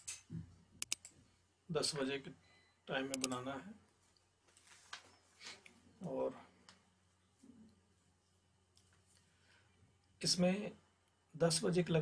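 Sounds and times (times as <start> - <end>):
computer mouse clicks: 0.8 - 1.2, 3.1 - 3.4.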